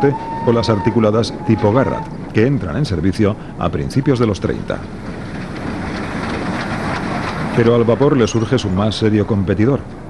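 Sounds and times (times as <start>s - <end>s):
steam locomotive running: 0.0s - 10.0s.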